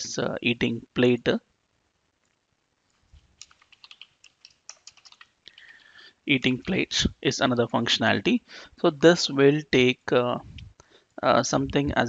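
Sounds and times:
faint keyboard typing: 3.0s - 7.1s.

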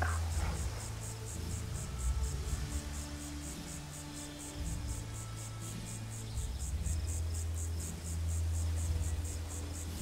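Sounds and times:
insects chirping: 0.0s - 10.0s.

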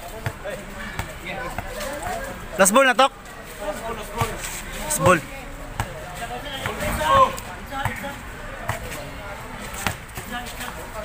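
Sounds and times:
basketball bouncing on concrete: 0.2s - 1.7s, 5.0s - 6.0s, 6.6s - 8.0s, 8.6s - 9.0s, 9.7s - 10.8s
players shouting: 0.3s - 9.9s.

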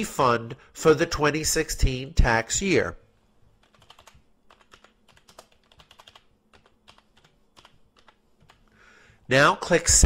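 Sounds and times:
faint typing on keyboard: 3.5s - 8.8s.

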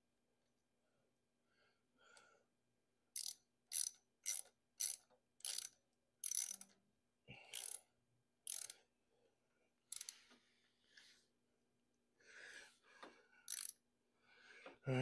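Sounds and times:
ratchet tool clicking: 3.2s - 6.8s, 7.5s - 7.8s, 8.4s - 8.8s, 9.9s - 10.2s, 13.5s - 13.8s.

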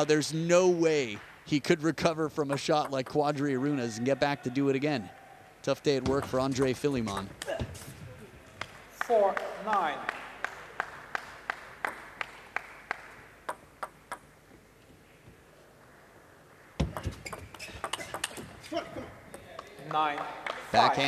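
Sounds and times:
table tennis ball bouncing on table: 6.0s - 7.6s, 11.9s - 12.2s, 13.4s - 14.3s, 16.8s - 18.6s
ping pong rally clicks: 11.8s - 14.3s, 16.9s - 18.7s.

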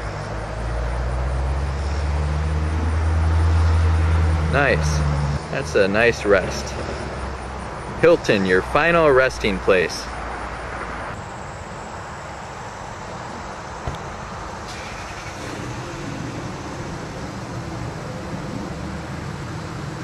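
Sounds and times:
road traffic noise: 0.0s - 20.0s.

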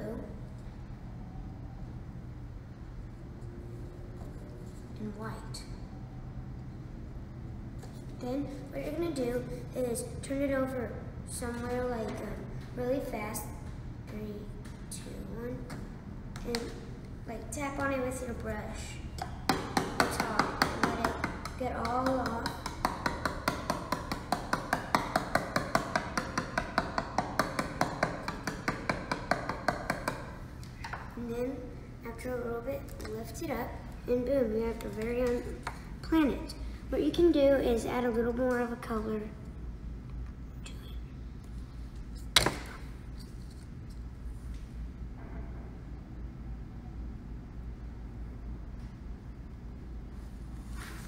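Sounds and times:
low steady hum: 0.0s - 51.0s
brush handle tapping plastic cup: 19.2s - 30.3s
hard object knocking on surface: 19.2s - 30.3s.

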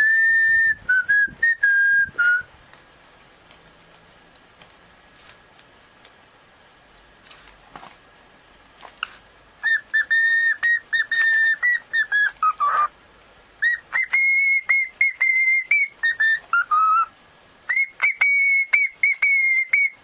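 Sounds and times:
cockatiel whistling: 0.0s - 2.5s, 9.6s - 12.9s, 13.6s - 17.1s, 17.7s - 20.0s.

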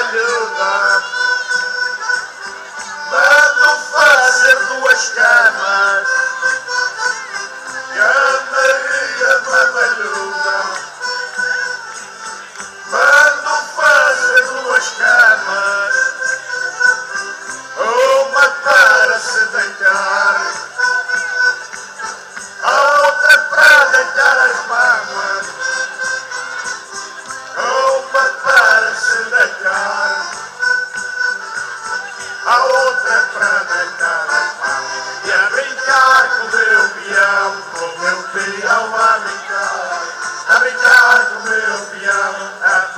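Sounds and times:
men singing: 0.0s - 1.4s, 3.0s - 6.4s, 7.7s - 11.6s, 12.5s - 16.4s, 17.7s - 21.0s, 22.0s - 26.7s, 27.4s - 30.5s, 32.3s - 42.9s
folk band playing: 0.0s - 42.9s.

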